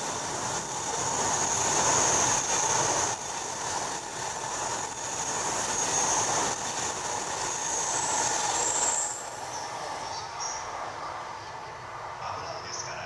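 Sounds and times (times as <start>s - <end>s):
high-speed train passing: 0.0s - 13.0s.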